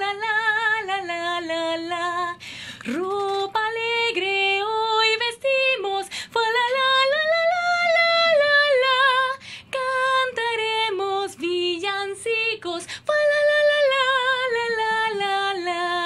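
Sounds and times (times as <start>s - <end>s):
woman singing unaccompanied: 0.0s - 16.0s.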